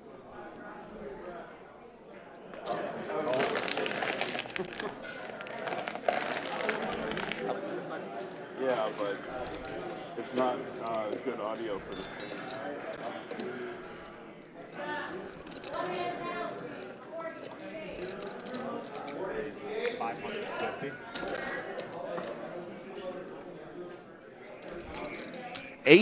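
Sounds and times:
background conversation: 0.0s - 26.0s.

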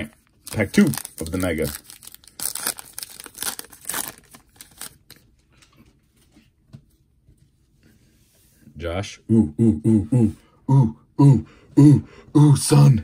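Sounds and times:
foil pack tearing open: 0.5s - 5.2s.

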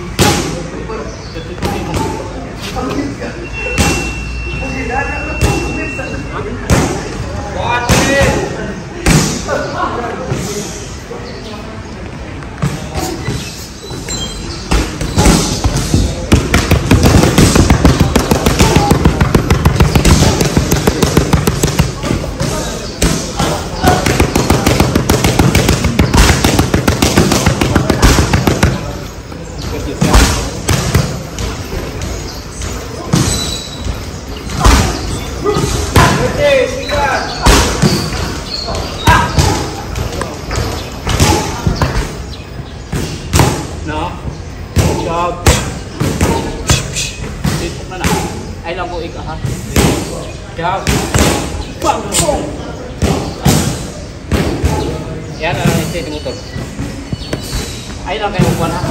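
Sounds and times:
boxing gloves hitting mitts: 14.7s - 29.0s, 39.1s - 42.2s.

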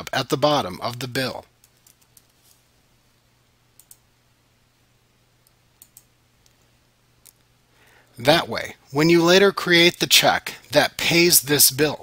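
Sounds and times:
faint low hum: 0.0s - 12.0s
faint computer clicks: 3.8s - 4.1s, 5.4s - 7.5s.

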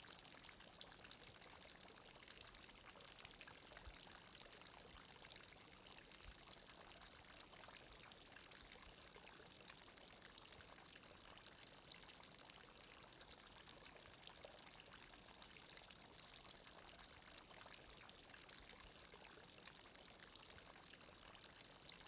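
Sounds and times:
faint steady hiss: 0.0s - 22.0s.

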